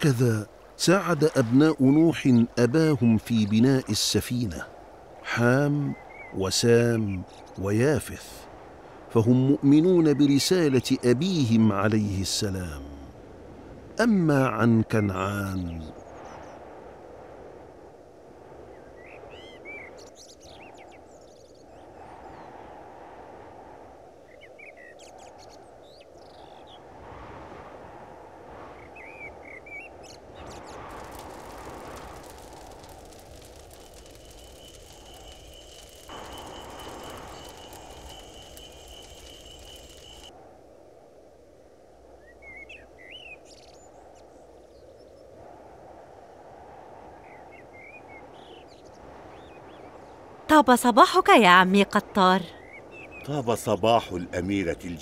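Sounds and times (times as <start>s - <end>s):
birds chirping: 0.0s - 4.6s, 5.3s - 8.1s, 28.9s - 40.3s, 47.3s - 55.0s
low steady background noise: 0.0s - 26.6s, 47.9s - 55.0s.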